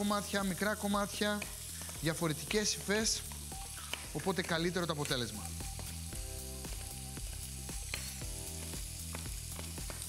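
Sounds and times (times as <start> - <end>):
sausage sizzling in a pan: 0.0 - 10.0
soft background music: 0.0 - 10.0.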